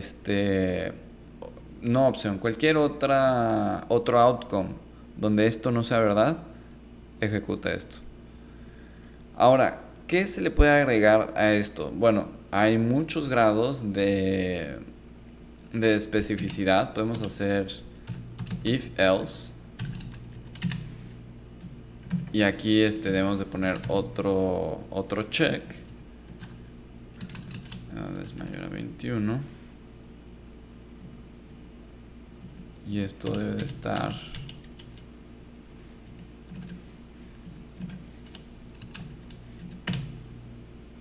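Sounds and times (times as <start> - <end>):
steady low hum: 0.0 - 41.0
computer keyboard typing: 16.2 - 17.4, 18.0 - 18.8, 19.8 - 22.4, 23.5 - 24.2, 25.8 - 28.4, 32.5 - 35.1, 36.0 - 40.2.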